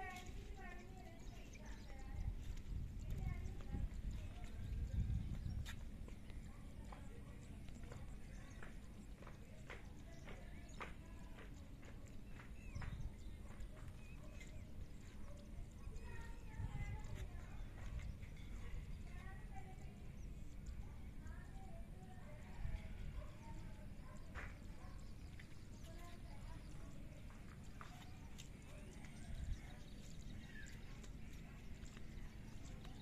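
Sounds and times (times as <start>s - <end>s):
faint distant voices: 0.0s - 33.0s
wind rumble on microphone: 0.0s - 33.0s.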